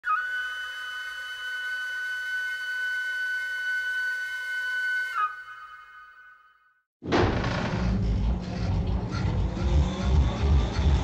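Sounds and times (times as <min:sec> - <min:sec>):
long high flute note: 0:00.0 - 0:06.8.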